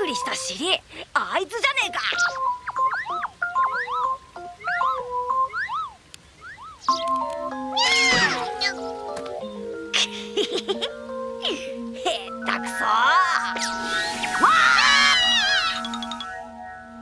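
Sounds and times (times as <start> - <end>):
light cartoon music: 0.0 - 17.0
cat crying: 7.7 - 8.8, 13.1 - 16.0
kitten mewing: 7.8 - 8.8.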